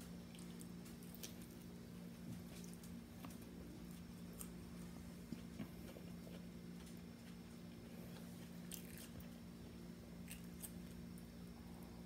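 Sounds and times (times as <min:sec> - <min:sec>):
steady low hum: 0:00.0 - 0:12.0
person chewing: 0:08.1 - 0:09.4.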